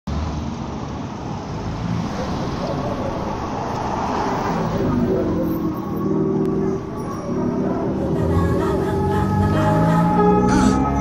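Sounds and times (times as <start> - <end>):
traffic engine and tyre noise: 0.1 - 11.0.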